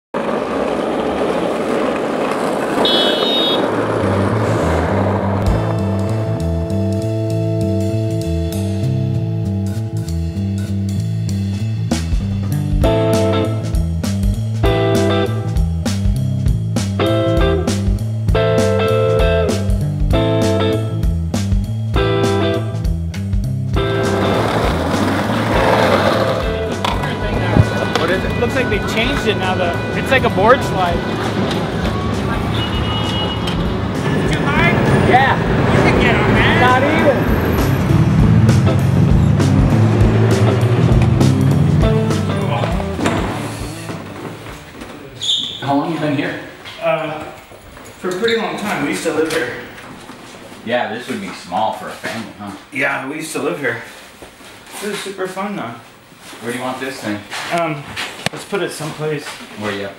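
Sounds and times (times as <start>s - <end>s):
skateboard wheels rolling on asphalt: 0.1s - 7.8s, 23.7s - 52.2s
city street traffic noise: 0.1s - 52.8s
bass line: 3.7s - 44.8s
music with drums: 9.7s - 25.0s, 25.6s - 33.8s, 37.5s - 44.7s
high-pitched squeal: 27.0s - 38.0s, 45.1s - 45.9s.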